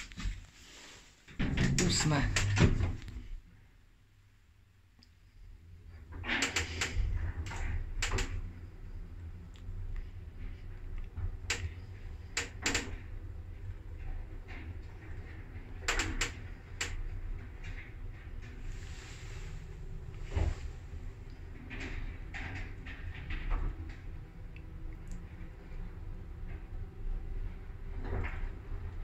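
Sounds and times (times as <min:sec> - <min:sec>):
lift clicks and clunks: 0:01.4 - 0:03.3.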